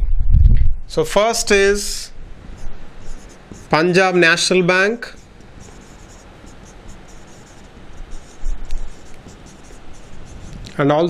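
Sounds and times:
marker pen writing on whiteboard: 2.6s - 10.8s.

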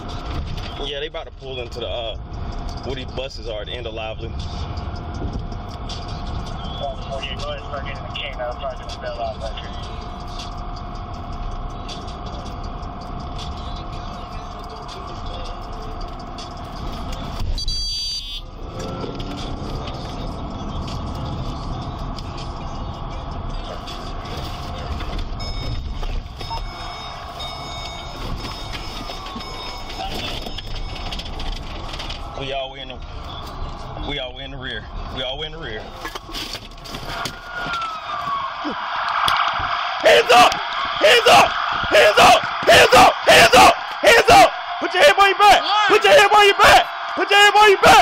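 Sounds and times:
car engine and road noise: 0.0s - 48.0s.

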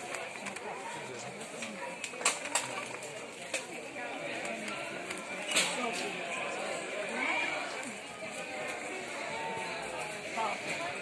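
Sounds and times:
crowd shouting and talking: 0.0s - 11.0s.

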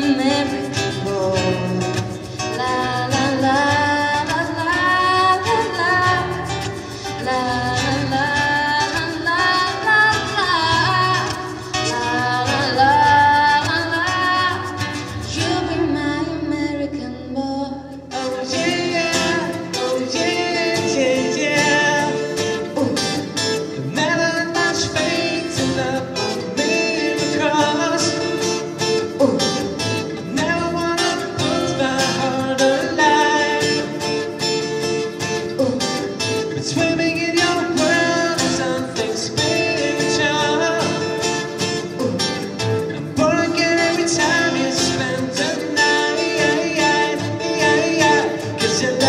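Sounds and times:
person singing: 0.0s - 34.4s, 35.3s - 49.0s
acoustic guitar music: 0.0s - 49.0s.

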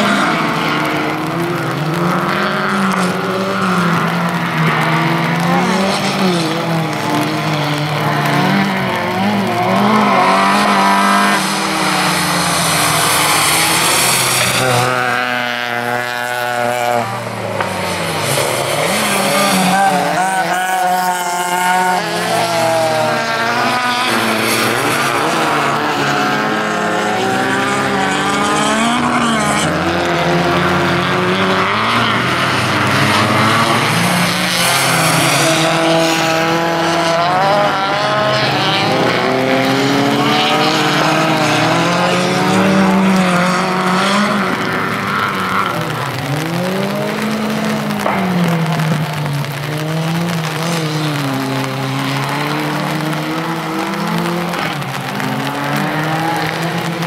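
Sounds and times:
race car engines revving: 0.0s - 57.0s.

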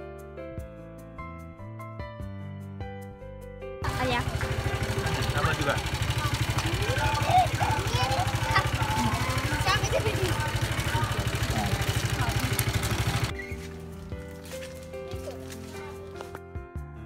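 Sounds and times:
background music: 0.0s - 17.0s
small engine idling: 3.8s - 16.3s
children's voices: 6.0s - 12.9s.

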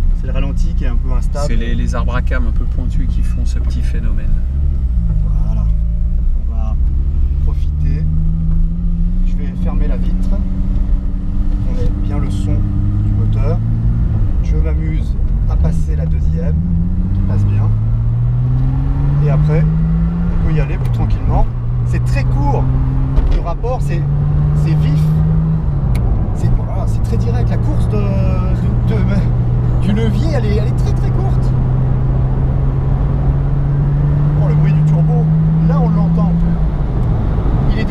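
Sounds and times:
car engine accelerating: 0.0s - 37.9s.

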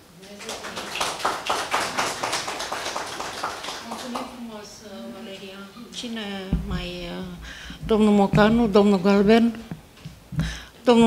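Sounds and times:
audience applauding: 0.1s - 4.5s.

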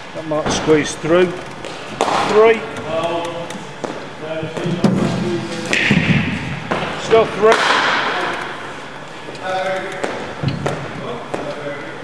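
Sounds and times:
cricket bat hitting ball: 5.7s - 8.3s.

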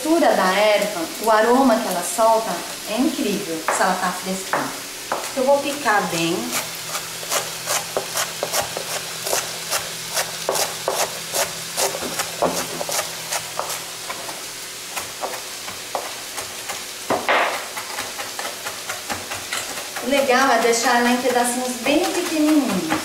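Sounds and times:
vegetables sizzling in a wok: 0.0s - 23.0s
knife chopping on plastic board: 4.5s - 5.3s, 7.3s - 13.8s, 15.0s - 23.0s.

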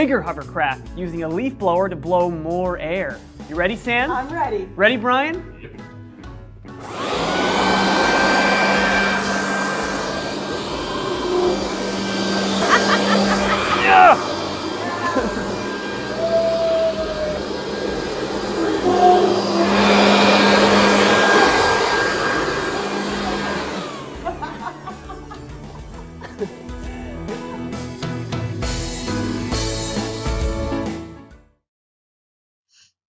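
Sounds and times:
electric leaf blower running: 6.8s - 26.2s.

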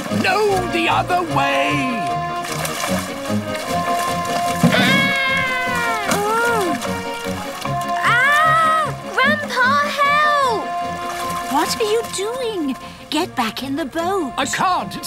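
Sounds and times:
wordless cries of alarm: 3.8s - 9.1s.

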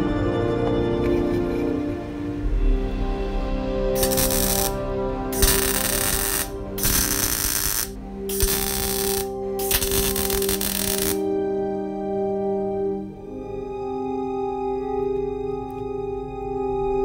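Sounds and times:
background music with sustained tones: 0.0s - 17.0s
welder arc crackling: 4.0s - 11.2s.

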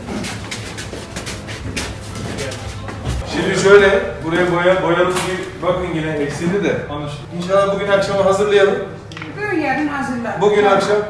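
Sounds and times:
footsteps on hard floor: 0.0s - 5.5s.

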